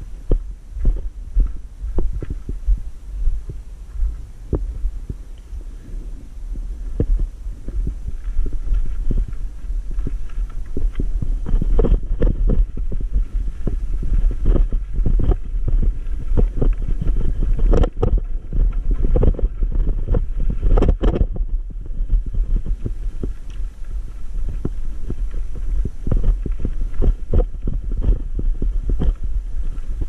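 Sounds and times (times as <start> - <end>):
e-bike rolling over rough track: 3.4 - 30.0
knocks and rattles of bike: 6.9 - 30.0.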